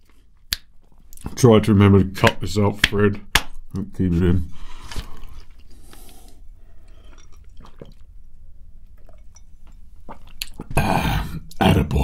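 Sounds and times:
man drinking water: 0:04.6 - 0:11.6
soft swallowing: 0:04.9 - 0:08.1, 0:08.9 - 0:11.6
breathy bursts of breath: 0:05.7 - 0:07.3.

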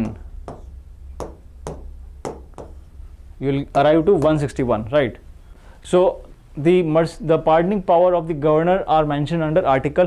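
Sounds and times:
steady low hum: 0:00.0 - 0:10.0
pen tapping on touchscreen: 0:00.5 - 0:02.8.

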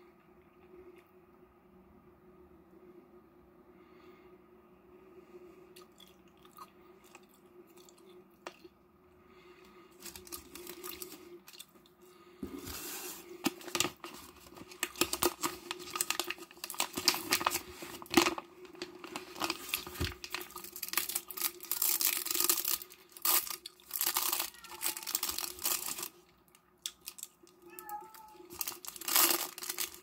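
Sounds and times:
plastic packaging crinkling: 0:10.0 - 0:11.8, 0:13.4 - 0:30.0.

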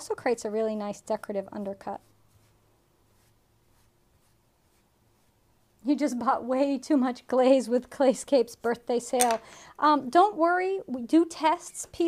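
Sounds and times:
wooden tool scratching clay: 0:01.1 - 0:05.5.

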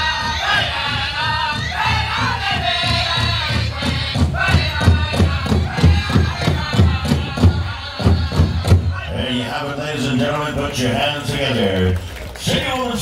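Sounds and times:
group singing: 0:00.0 - 0:10.2
steady drumbeat: 0:00.0 - 0:11.6.

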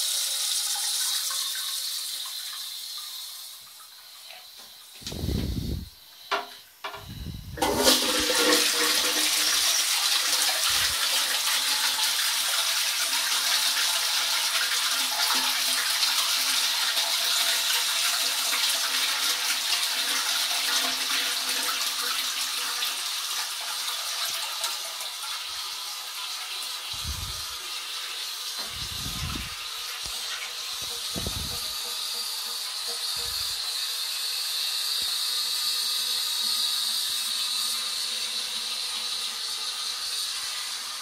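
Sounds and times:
toilet flushing water rushing: 0:00.0 - 0:41.0
toilet flush handle pulled: 0:07.6 - 0:09.6.

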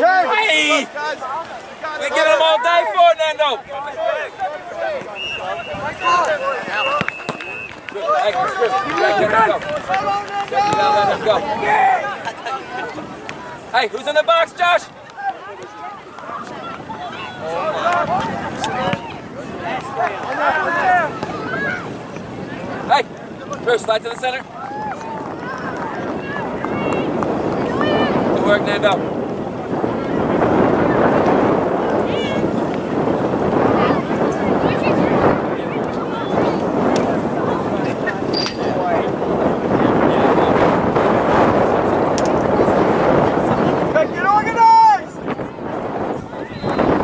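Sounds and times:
distant voices shouting: 0:00.0 - 0:42.1
wind rushing over microphone: 0:00.0 - 0:47.0.

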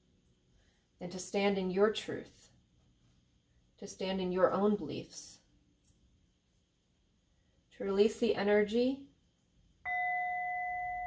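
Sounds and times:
metal singing bowl ringing: 0:09.9 - 0:11.0.

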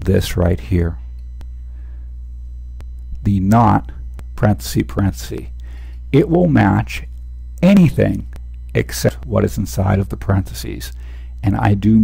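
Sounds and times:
mains hum: 0:00.0 - 0:12.0.

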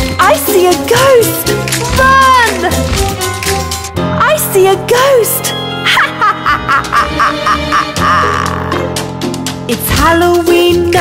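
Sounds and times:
children's song backing music: 0:00.2 - 0:05.5, 0:09.6 - 0:11.0
spooky cartoon cackling laugh: 0:05.9 - 0:08.8.

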